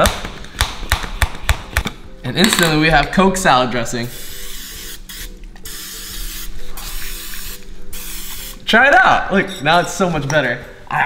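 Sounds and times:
oil mister spraying: 4.1s - 8.6s.

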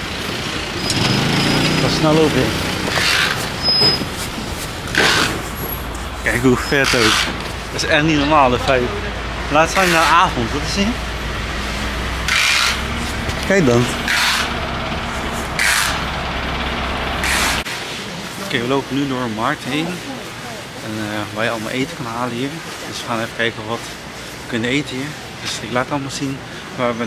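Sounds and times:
traffic noise: 0.0s - 27.0s.

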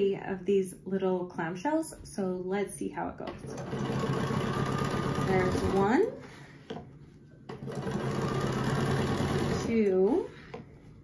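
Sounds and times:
sewing machine stitching: 3.2s - 6.1s, 7.5s - 10.0s.

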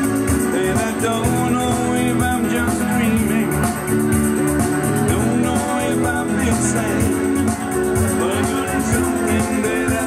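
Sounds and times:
live band with guitar: 0.0s - 10.0s
man singing: 0.0s - 10.0s.

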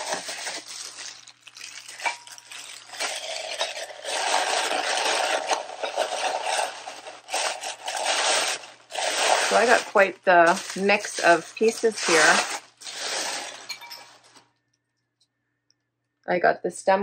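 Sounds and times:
paper and cardboard rustling: 0.0s - 3.3s, 4.0s - 14.4s.

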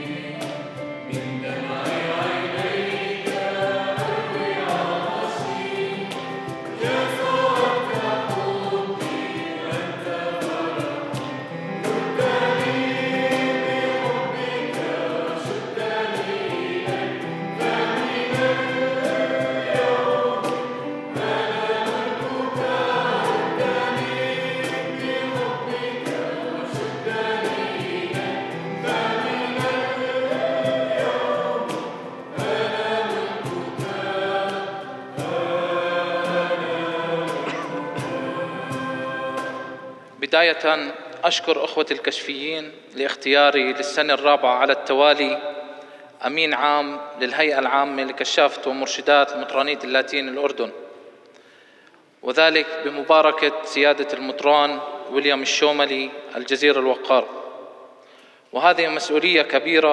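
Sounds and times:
choir singing a hymn: 0.0s - 51.2s, 52.2s - 59.9s.

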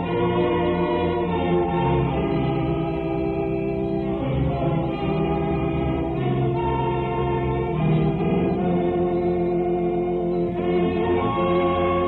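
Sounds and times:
congregation singing a hymn: 0.0s - 12.0s
organ accompaniment: 0.0s - 12.0s.

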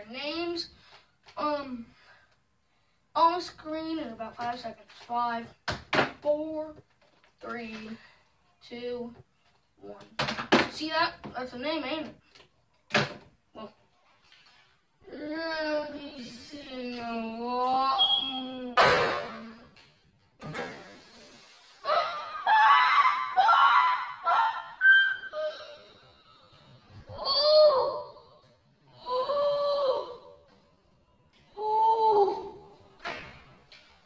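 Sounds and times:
boy screaming and laughing: 21.8s - 26.1s, 27.1s - 28.4s, 29.0s - 30.4s.

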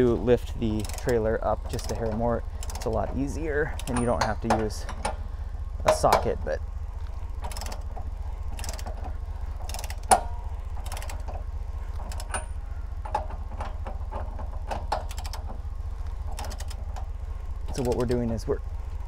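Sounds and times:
ratchet wrench clicking: 0.5s - 5.3s, 7.4s - 15.6s, 16.2s - 18.4s.

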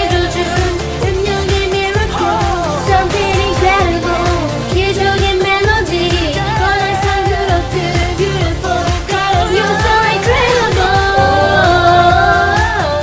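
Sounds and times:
dance pop backing track: 0.0s - 13.0s
person singing: 0.0s - 13.0s.

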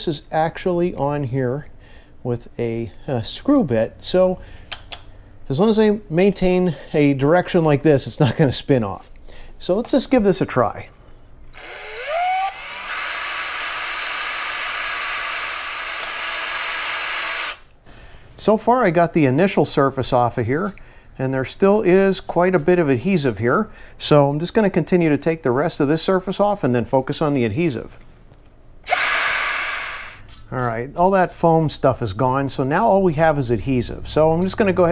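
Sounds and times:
cordless drill whining: 11.5s - 17.7s, 28.8s - 30.3s.

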